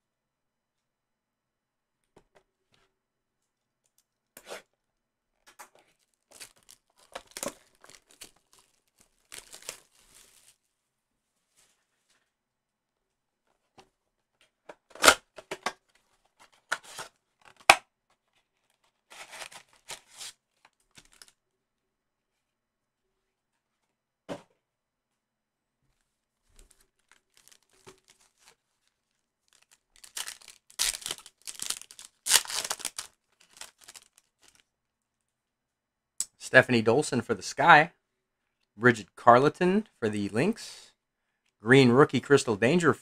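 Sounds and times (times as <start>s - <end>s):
loud ripping: 6.3s - 10.5s, 27.0s - 28.6s, 29.6s - 34.6s
cardboard box tearing: 19.1s - 20.3s, 30.0s - 34.0s.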